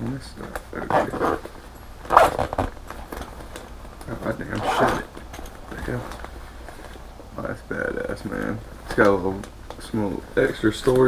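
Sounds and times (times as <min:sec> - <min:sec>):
bag being handled: 0:00.8 - 0:03.3, 0:04.2 - 0:05.3
zipper on fabric bag: 0:00.9 - 0:01.4, 0:02.1 - 0:02.7, 0:04.5 - 0:05.1.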